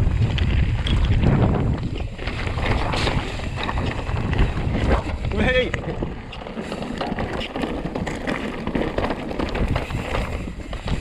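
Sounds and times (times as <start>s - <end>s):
bike rattling over bumps: 0.0s - 11.0s
bike tyres crunching on stones: 0.0s - 11.0s
wind on microphone: 0.0s - 11.0s.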